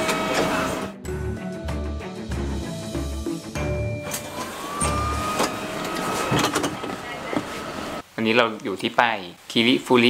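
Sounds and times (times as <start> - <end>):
bus high-pitched whine: 3.9 - 6.6.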